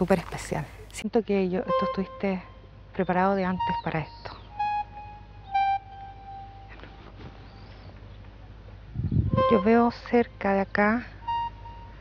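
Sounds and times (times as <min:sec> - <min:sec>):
soft electronic notes: 0:00.0 - 0:12.0.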